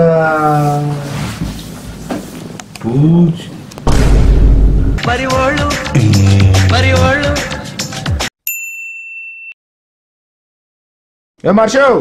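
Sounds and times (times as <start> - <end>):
background music: 4.8 - 8.3
high bell-like ding: 8.4 - 9.6.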